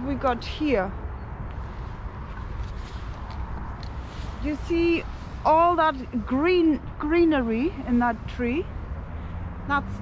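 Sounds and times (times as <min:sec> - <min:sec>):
wind buffeting microphone: 0:00.0 - 0:10.0
faint rustles and clicks: 0:01.4 - 0:06.5.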